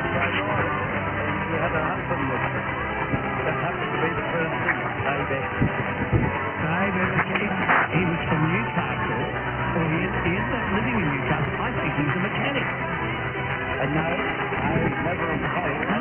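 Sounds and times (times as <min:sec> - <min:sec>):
muffled radio music and voices: 0:00.0 - 0:16.0.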